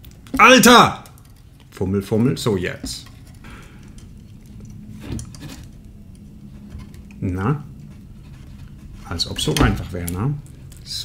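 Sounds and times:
handling noise: 0.0 - 11.0
low hum: 3.0 - 10.9.

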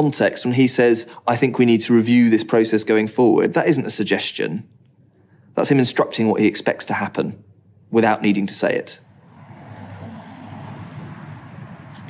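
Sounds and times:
low rumble and hiss: 0.0 - 9.4.

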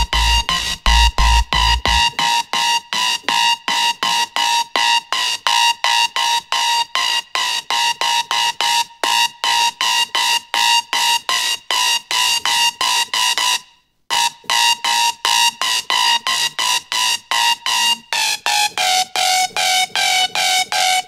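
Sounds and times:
harsh horn-like synthesizer notes: 0.0 - 2.4.

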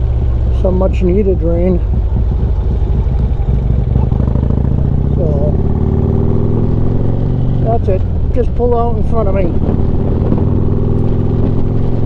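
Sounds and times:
motorcycle engine pulling: 0.0 - 7.9.

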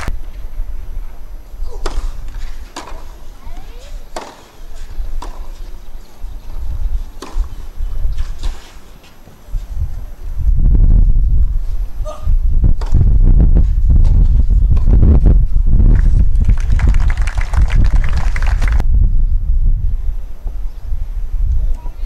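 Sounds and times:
racket striking tennis ball: 1.8 - 3.2, 4.0 - 5.7, 7.2 - 7.6, 12.8 - 13.1
low microphone rumble: 9.4 - 22.0.

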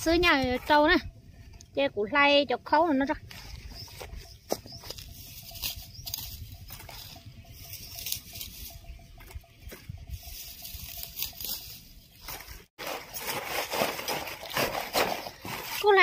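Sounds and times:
ferns and grass rustling: 0.0 - 16.0.

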